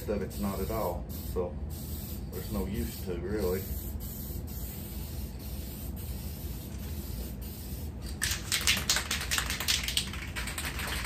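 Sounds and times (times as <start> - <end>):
spray can hissing: 0.3 - 9.8
spray can mixing ball rattle: 4.6 - 11.0.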